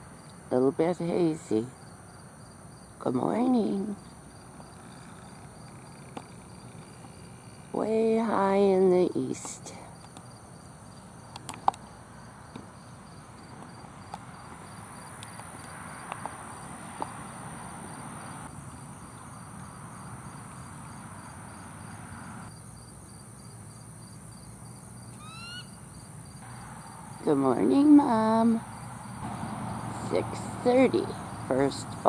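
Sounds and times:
insect chorus trilling: 1.0 - 32.0
eagle chirping: 25.1 - 25.9.

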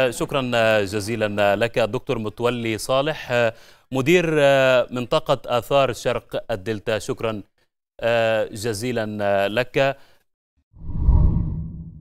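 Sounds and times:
deep whoosh: 10.8 - 12.0.

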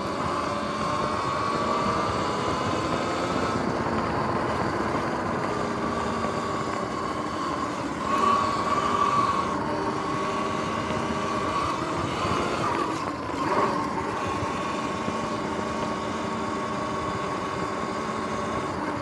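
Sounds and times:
electric motor whine: 0.0 - 19.0
wind and tyre rush: 0.0 - 19.0.

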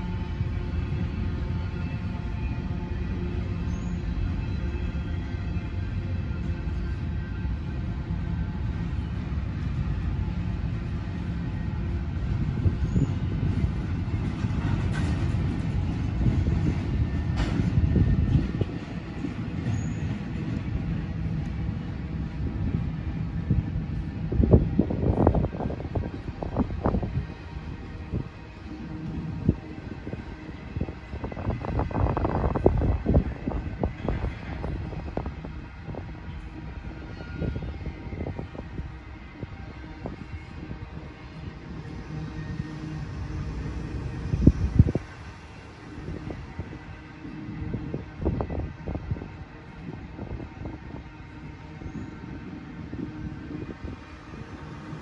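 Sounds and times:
train cars rumbling by: 0.0 - 55.0
metallic clacks of train wheels: 12.0 - 24.2, 30.8 - 38.5.

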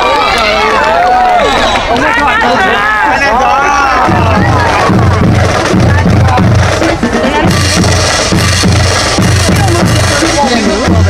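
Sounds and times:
bass drums beating: 3.7 - 11.0
snare drums rattling: 3.8 - 11.0.

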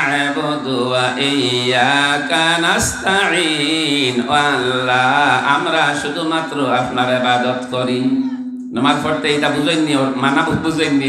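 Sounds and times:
man chanting through microphone: 0.0 - 11.0.

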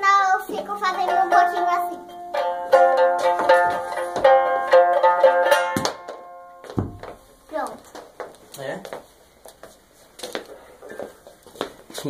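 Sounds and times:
plucked string instrument: 0.5 - 7.2.

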